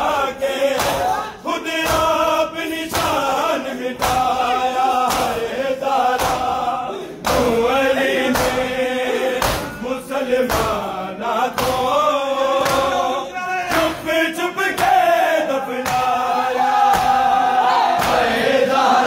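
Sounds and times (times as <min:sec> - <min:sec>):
men chanting together: 0:00.0 - 0:19.0
hands slapping bare chests: 0:00.7 - 0:01.2, 0:01.8 - 0:02.3, 0:02.9 - 0:05.5, 0:06.1 - 0:08.8, 0:09.4 - 0:09.8, 0:10.4 - 0:10.9, 0:11.5 - 0:12.0, 0:12.6 - 0:13.0, 0:14.7 - 0:15.1, 0:15.8 - 0:16.2, 0:16.8 - 0:17.4, 0:18.0 - 0:18.3.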